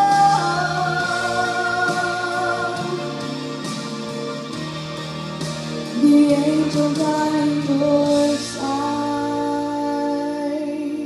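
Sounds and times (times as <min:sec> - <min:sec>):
musical accompaniment: 0:00.0 - 0:11.0.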